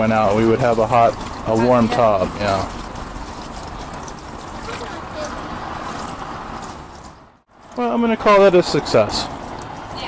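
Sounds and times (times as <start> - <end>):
water trickling down tub overflow: 0.0 - 7.9.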